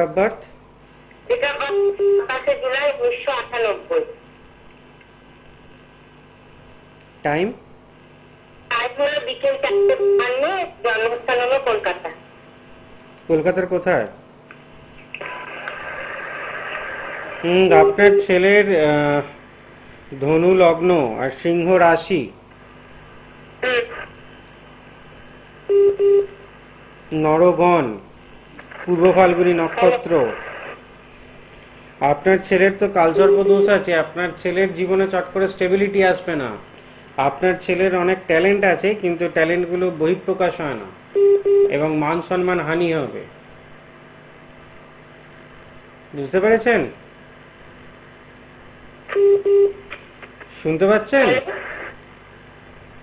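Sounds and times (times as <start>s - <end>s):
telephone line beeps: 1.7s - 2.3s, 17.7s - 18.4s, 25.7s - 26.4s, 41.2s - 41.7s, 49.1s - 49.8s.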